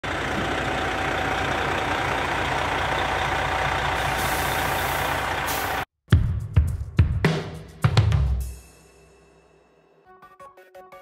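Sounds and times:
truck engine running: 0:00.0 - 0:05.9.

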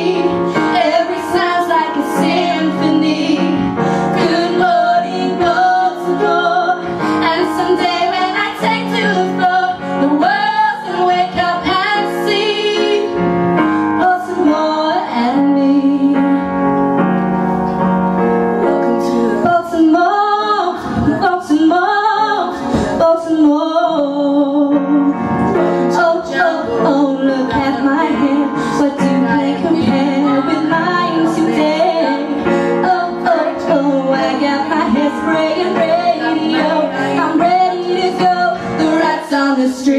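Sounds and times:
women singing into microphones: 0:00.0 - 0:13.3, 0:13.9 - 0:16.4, 0:18.7 - 0:39.9
keyboard accompaniment: 0:00.0 - 0:39.9.

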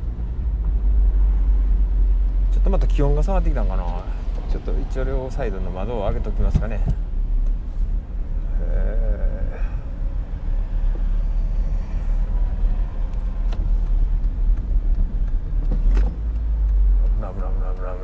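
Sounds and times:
car engine running smoothly: 0:00.0 - 0:18.0
wind and road noise: 0:00.0 - 0:18.0.

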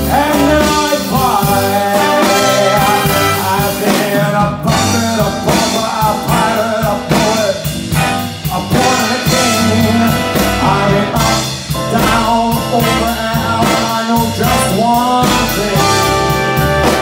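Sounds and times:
live big band music: 0:00.0 - 0:17.0
man singing: 0:00.0 - 0:17.0.

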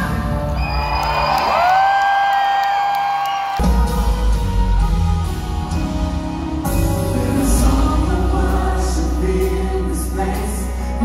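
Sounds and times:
gospel band playing: 0:03.5 - 0:11.0.

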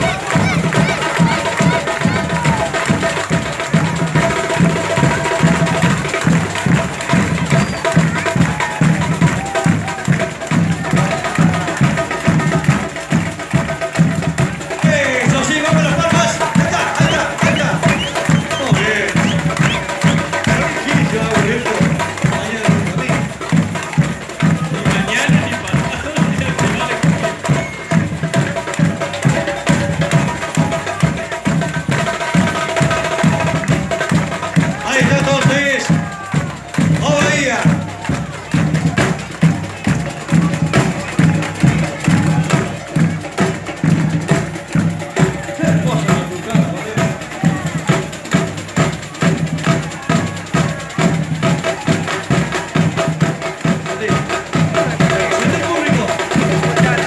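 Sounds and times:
samba drum section: 0:00.0 - 0:57.0.

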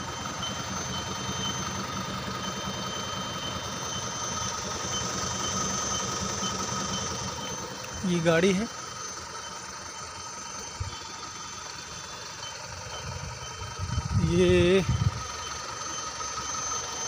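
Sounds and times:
faint high beeps: 0:00.0 - 0:17.0
truck diesel engine idling: 0:00.0 - 0:17.0.

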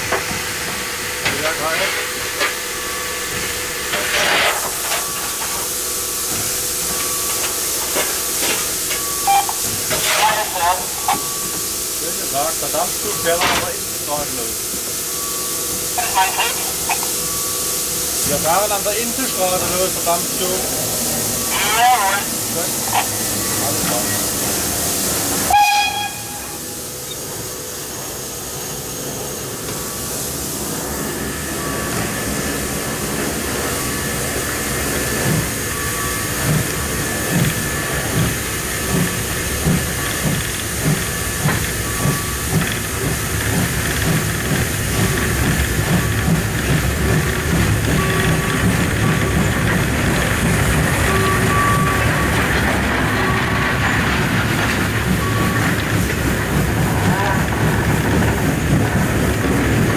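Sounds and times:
steam locomotive exhaust beats: 0:00.0 - 0:59.9
steam hissing: 0:00.1 - 0:59.9
steam whistle blast: 0:09.1 - 0:11.4, 0:25.5 - 0:26.9.

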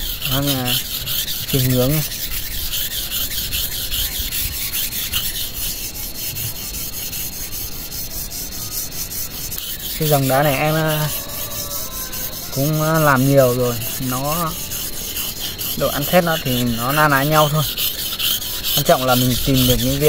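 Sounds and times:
knife scraping on whetstone: 0:00.0 - 0:20.0.

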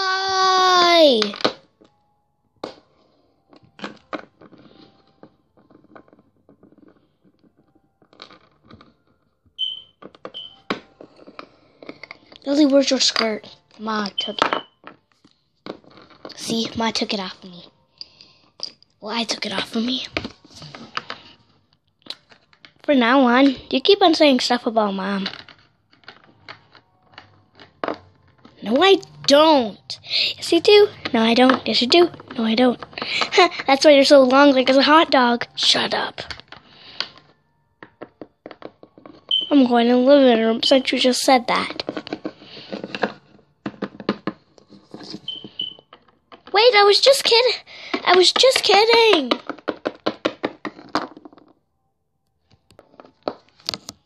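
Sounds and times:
short high-pitched beeps: 0:09.6 - 0:10.6.

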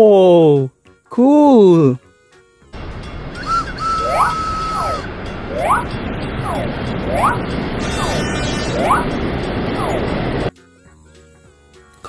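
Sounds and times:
train rumbling on rails: 0:02.8 - 0:10.5
held whistle-like tone: 0:03.3 - 0:07.4
short swooping tones: 0:03.4 - 0:10.0.

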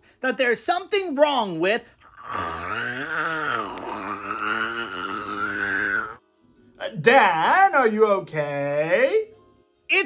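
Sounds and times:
man groaning: 0:02.2 - 0:06.2.

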